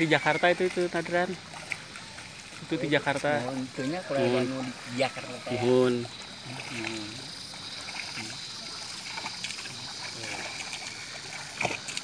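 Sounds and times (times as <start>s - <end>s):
water and mud sloshing: 0.0s - 12.0s.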